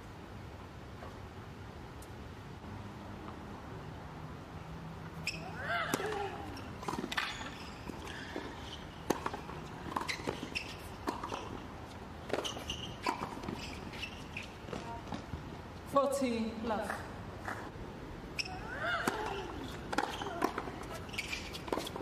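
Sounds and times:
racket striking tennis ball: 5.3 - 11.6, 19.0 - 22.0.

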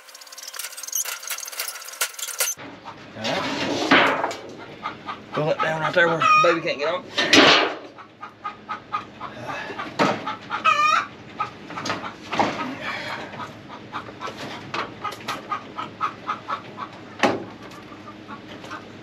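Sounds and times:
chickens clucking: 2.6 - 19.0.

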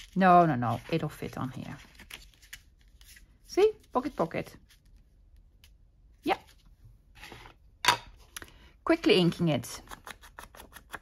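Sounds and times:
soft rustle of craft supplies: 0.0 - 7.6.

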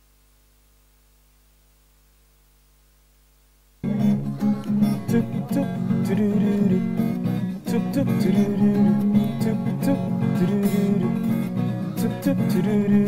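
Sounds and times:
faint hum: 0.0 - 13.0
acoustic guitar strumming: 3.8 - 13.0.

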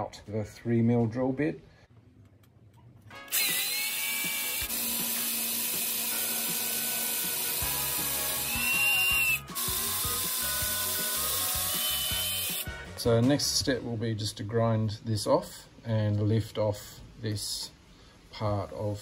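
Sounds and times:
cordless drill drilling metal: 3.3 - 12.7.

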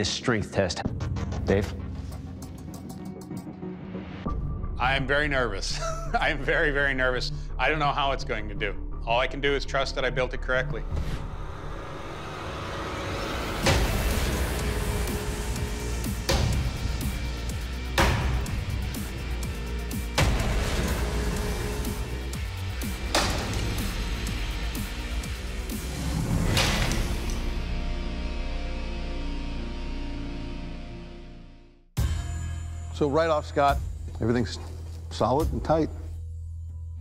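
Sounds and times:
background music: 0.0 - 37.0.

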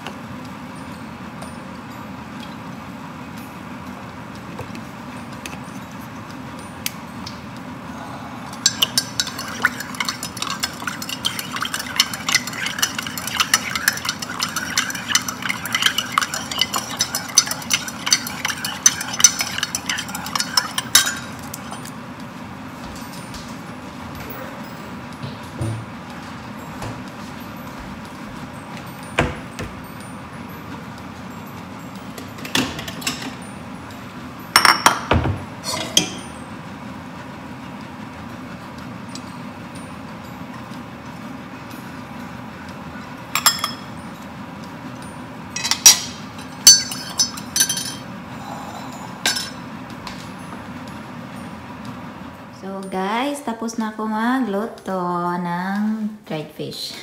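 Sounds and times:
spoon clinking in ceramic mug: 8.6 - 21.9, 43.4 - 44.0, 45.6 - 48.1, 49.2 - 49.6.

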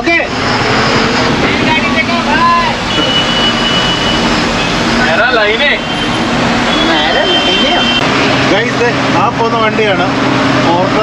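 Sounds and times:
road noise: 0.0 - 11.0
truck engine hum: 0.0 - 11.0.

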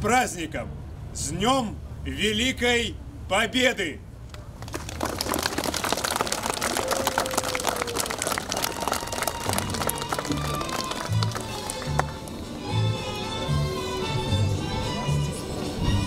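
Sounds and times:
crowd applauding: 4.6 - 12.4.

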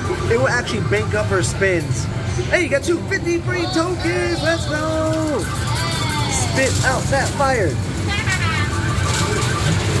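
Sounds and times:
repeated electronic beeps: 0.0 - 2.6, 8.5 - 10.0.

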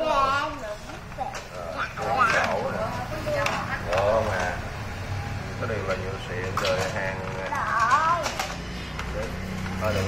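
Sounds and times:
plastic toy clicks: 6.4 - 9.9.

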